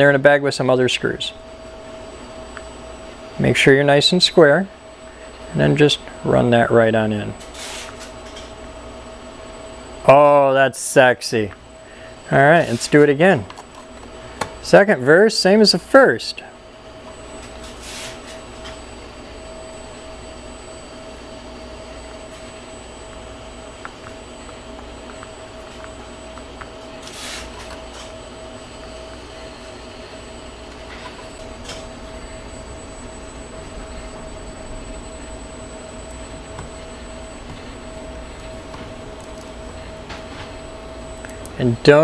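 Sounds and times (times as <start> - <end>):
steady machine hum: 0.0 - 42.0.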